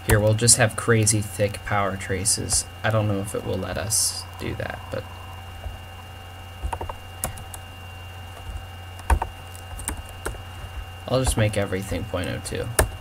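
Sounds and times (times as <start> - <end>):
faint high whine: 0.0 - 13.0
steady low hum: 0.0 - 13.0.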